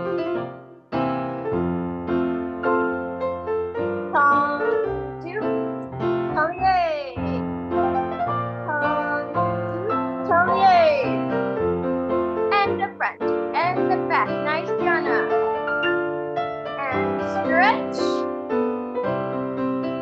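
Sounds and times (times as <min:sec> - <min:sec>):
piano chords: 0:00.0 - 0:20.0.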